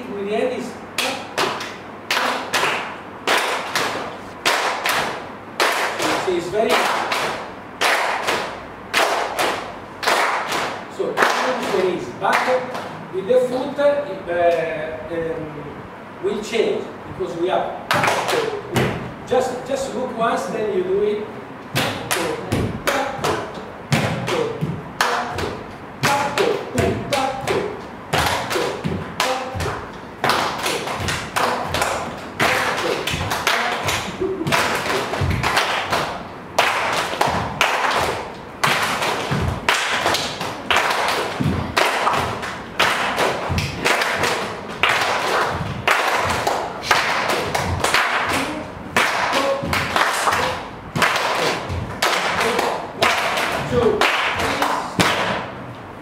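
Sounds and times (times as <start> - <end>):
hands clapping: 1.0 - 13.0, 17.9 - 18.6, 21.8 - 22.3, 24.0 - 55.6
bare feet stamping on floor: 26.8 - 36.1, 36.7 - 48.1, 51.0 - 52.3.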